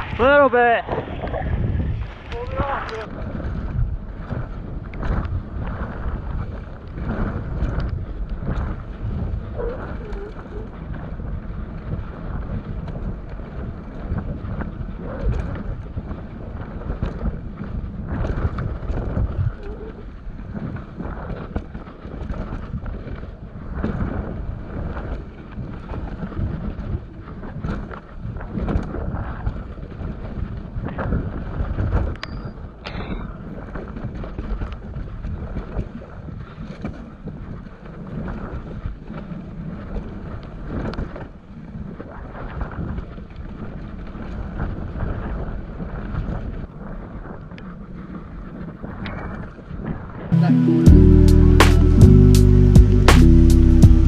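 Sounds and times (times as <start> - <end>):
wind rushing over microphone: 0.0 - 51.1.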